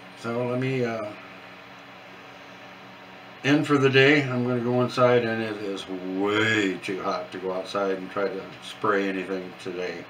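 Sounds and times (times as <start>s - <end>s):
faint room noise hiss: 0.0s - 10.0s.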